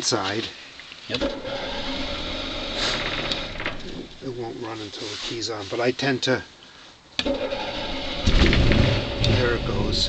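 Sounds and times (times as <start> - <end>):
generator engine cranking: 1.2 - 4.4, 7.2 - 10.0.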